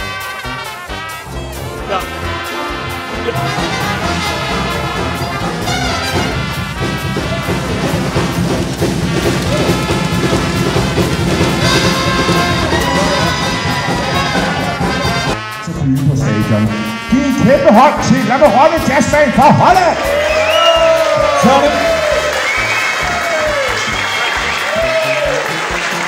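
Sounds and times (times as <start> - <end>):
jazz band playing: 0.0 - 26.0.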